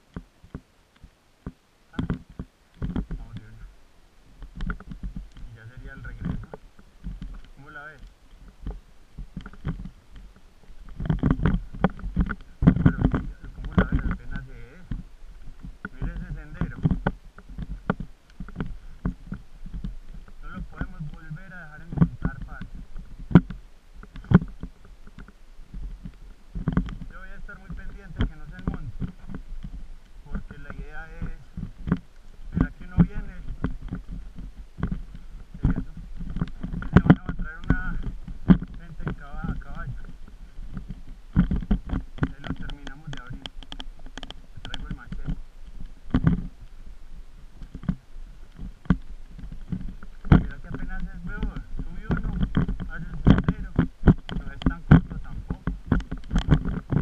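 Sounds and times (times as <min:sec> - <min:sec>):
camera handling knocks and rumble: 0:01.4 - 0:03.6, 0:04.4 - 0:46.7, 0:47.6 - 0:57.0.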